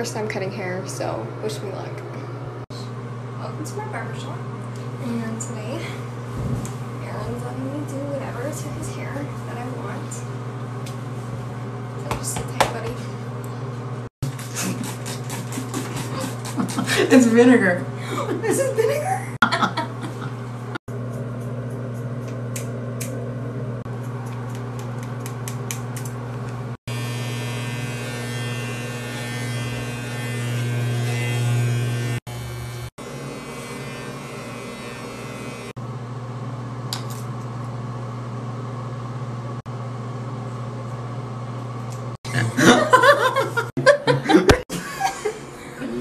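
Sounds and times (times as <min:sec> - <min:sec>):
people laughing: 0:14.5 - 0:17.4, 0:18.0 - 0:20.4, 0:42.3 - 0:46.0
electric hair clippers buzzing: 0:24.0 - 0:35.8.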